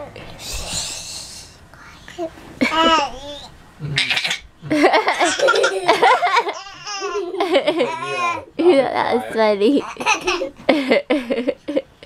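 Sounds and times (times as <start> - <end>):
baby laughing: 2.6 - 3.4, 4.9 - 8.5, 9.8 - 10.6.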